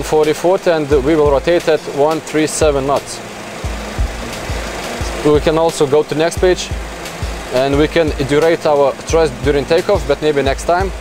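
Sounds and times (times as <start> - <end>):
cockpit hum: 0.0 - 11.0
soft low thumps: 3.6 - 5.7, 6.4 - 8.3.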